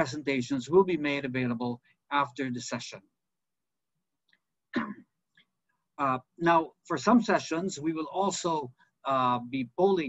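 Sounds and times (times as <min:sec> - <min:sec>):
man talking: 0:00.0 - 0:03.1, 0:06.0 - 0:10.0
man clearing his throat: 0:04.7 - 0:05.1.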